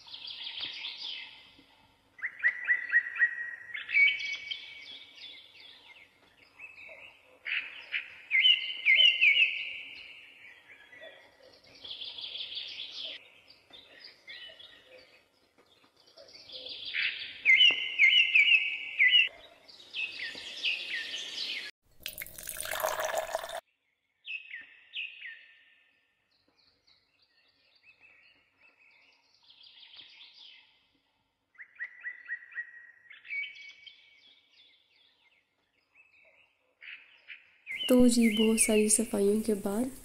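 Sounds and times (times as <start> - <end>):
birds chirping and singing: 2.2 - 21.7, 31.6 - 40.0.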